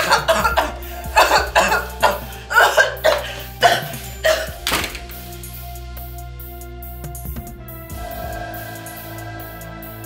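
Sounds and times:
woman choking cries and coughs: 0.0 - 4.8
background music: 0.0 - 10.0.

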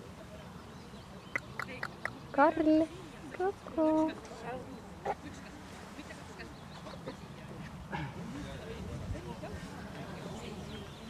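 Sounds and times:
indistinct distant talk: 0.0 - 11.0.

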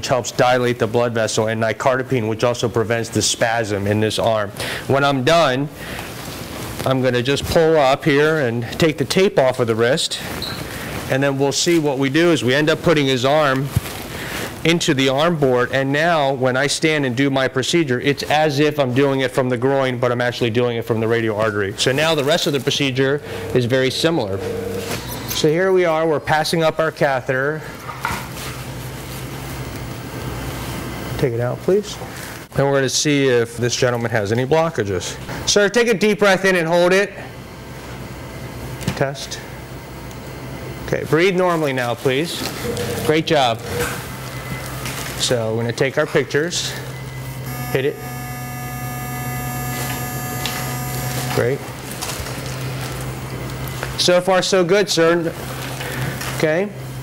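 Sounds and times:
room noise hiss: 0.0 - 57.0
steady low hum: 1.8 - 27.8, 37.0 - 54.0.

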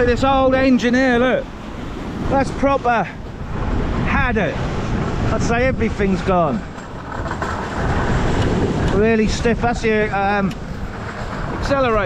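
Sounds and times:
wind noise on microphone: 0.0 - 12.0
surf washing against sea wall: 1.4 - 12.0.

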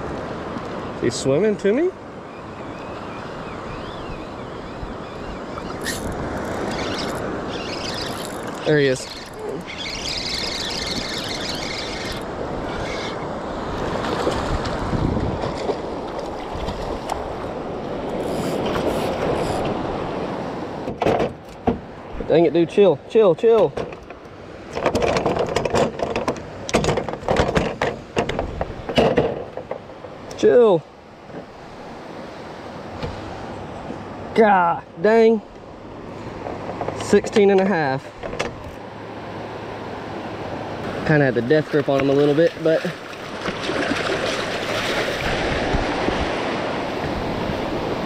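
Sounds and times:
wind on microphone: 3.6 - 20.2, 43.2 - 48.0
fishing reel whirring: 5.2 - 13.2, 18.1 - 19.6
surf: 24.6 - 48.0
water splashing: 41.6 - 46.7.

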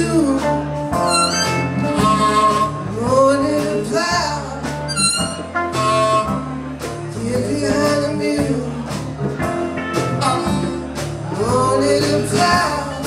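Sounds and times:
blues band playing: 0.0 - 13.0
harmonica bending notes: 1.0 - 3.1, 4.8 - 6.8.

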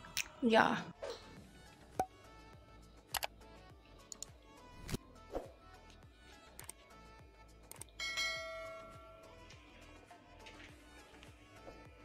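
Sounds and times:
background music: 0.0 - 12.0
notification bell chime: 8.0 - 9.2.

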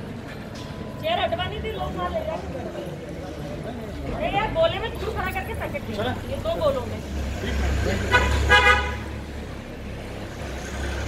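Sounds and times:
vehicle horn honking: 8.1 - 9.1.

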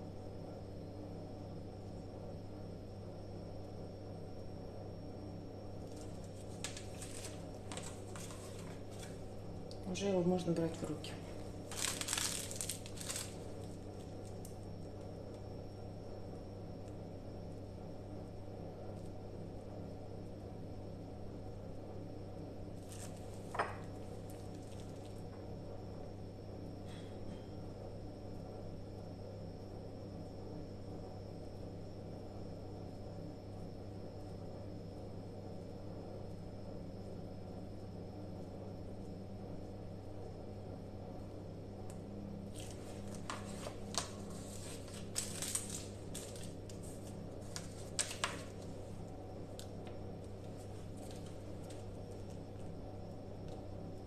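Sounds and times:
steady low hum: 0.0 - 54.0
plastic piping bag crinkling: 5.8 - 9.4, 10.8 - 14.7, 22.8 - 25.2, 42.5 - 49.0, 50.3 - 52.4.

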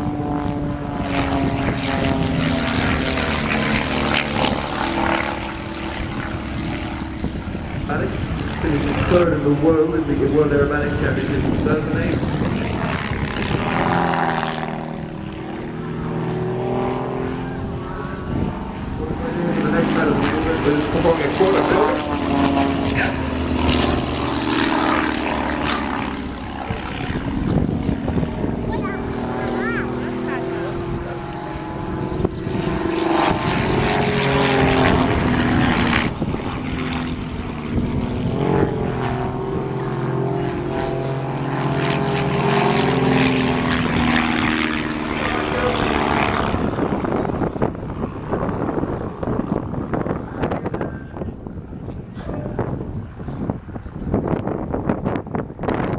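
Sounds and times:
propeller aircraft engines droning: 0.0 - 55.9.

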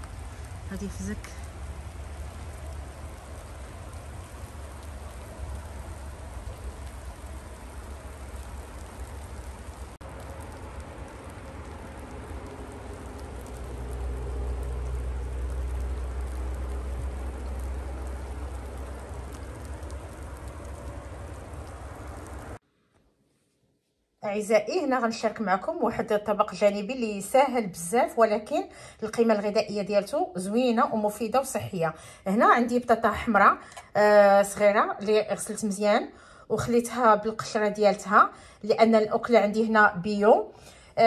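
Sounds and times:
low rumble: 0.0 - 22.6
wet snow pattering: 0.0 - 22.6.

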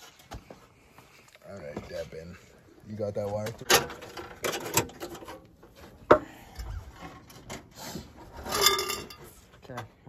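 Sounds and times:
rubbing and scraping: 1.6 - 9.6.

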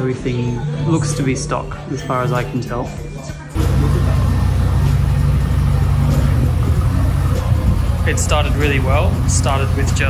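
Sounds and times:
rotary engine idling: 3.6 - 10.0.

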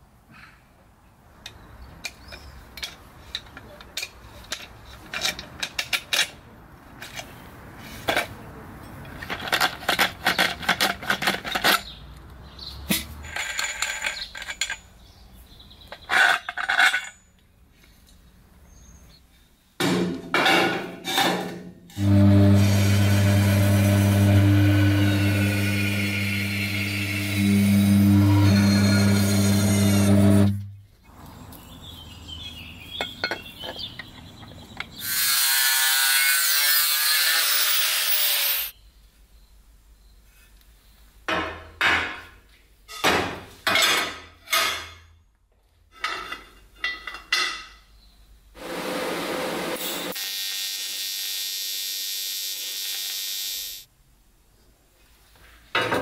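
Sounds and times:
band saw cutting metal: 21.9 - 30.7, 35.0 - 38.7, 48.6 - 53.9
high-pitched power tool: 22.0 - 30.7, 48.8 - 53.9
steady machine noise: 22.0 - 30.7.

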